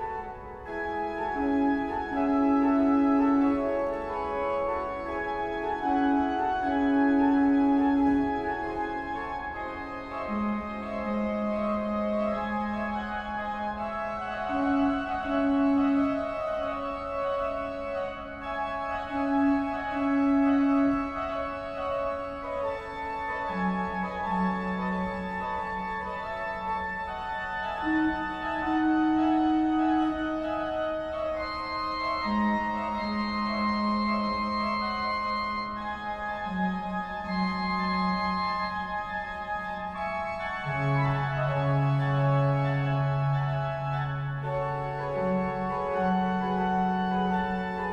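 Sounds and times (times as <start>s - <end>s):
organ chords: 0.0s - 47.9s.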